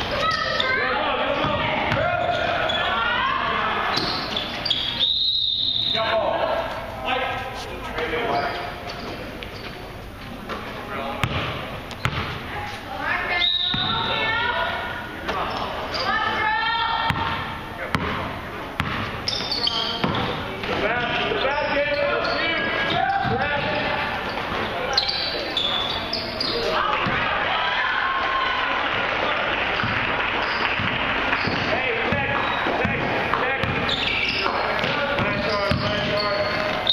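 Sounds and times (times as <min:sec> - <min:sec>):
basketball bouncing on wooden floor: 0:11.2 - 0:12.4, 0:17.0 - 0:18.2, 0:18.8 - 0:20.4, 0:30.8 - 0:33.9, 0:34.5 - 0:36.9
voices calling out: 0:12.0 - 0:36.9.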